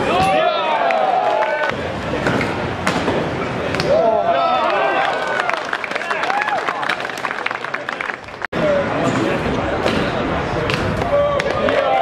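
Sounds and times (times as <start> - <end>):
crowd shouting and cheering: 0.0 - 2.2, 3.6 - 9.0, 9.8 - 12.0.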